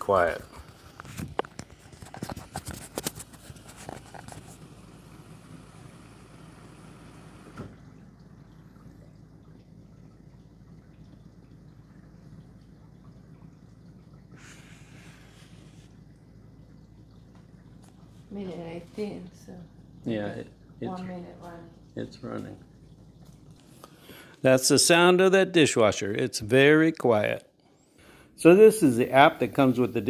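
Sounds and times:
water swishing: 0.0s - 25.2s
dishwasher pump humming: 0.0s - 30.0s
microphone rustling and clicks: 0.5s - 4.6s.

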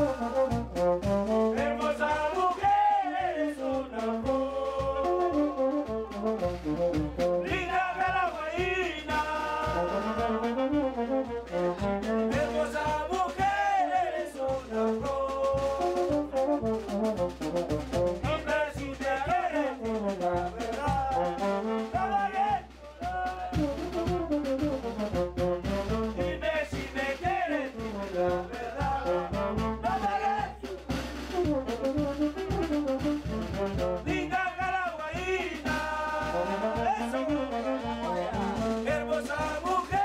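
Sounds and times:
brass band playing dance tune: 0.0s - 40.0s.

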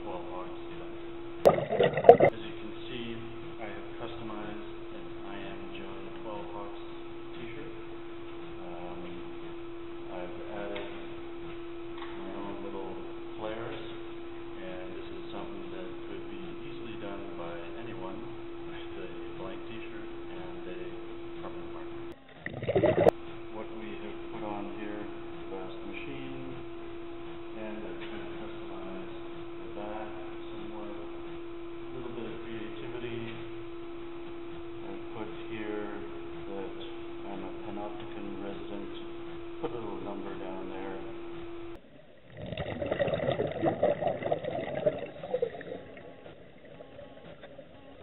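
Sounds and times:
steady single-pitched hum: 0.0s - 48.0s
water splashing and bubbling: 1.5s - 2.3s, 22.2s - 23.2s, 42.2s - 48.0s.

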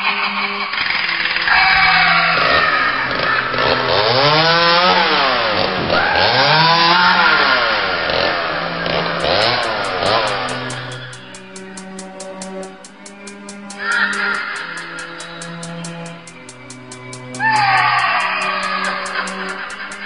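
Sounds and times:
noisy drone with pitch sweeps: 0.0s - 20.0s.

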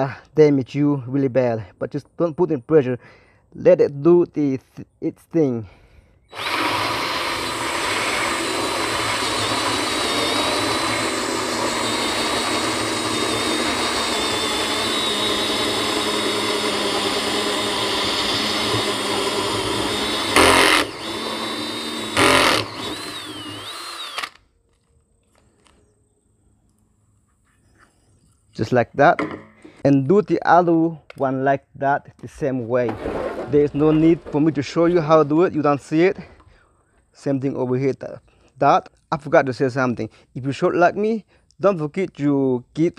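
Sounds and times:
drill cutting through plastic: 6.3s - 24.4s.

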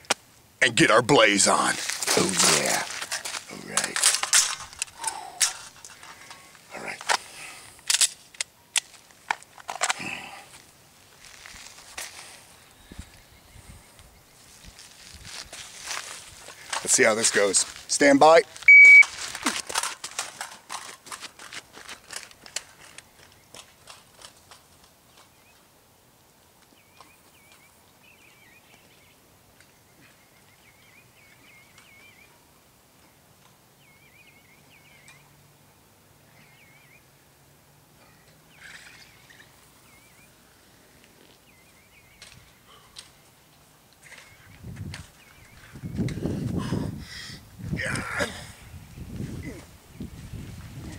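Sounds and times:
running footsteps on gravel: 1.4s - 4.9s, 14.4s - 24.8s
bird chirping: 26.7s - 32.4s, 33.8s - 35.4s, 36.2s - 37.1s, 38.0s - 40.5s, 41.4s - 43.4s, 44.0s - 46.1s.

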